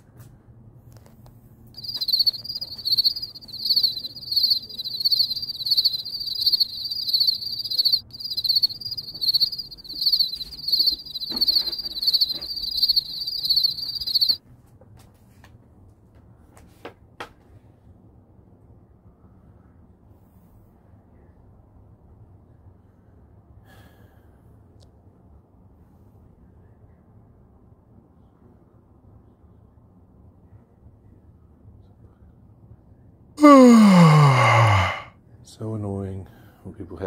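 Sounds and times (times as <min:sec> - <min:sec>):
cricket chirping: 0:01.8 - 0:14.4.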